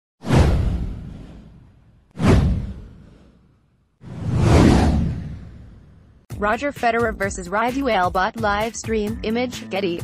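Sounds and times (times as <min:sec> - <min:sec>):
deep boom: 0:00.2 - 0:03.3, 0:04.0 - 0:06.2
whoosh: 0:00.2 - 0:06.3.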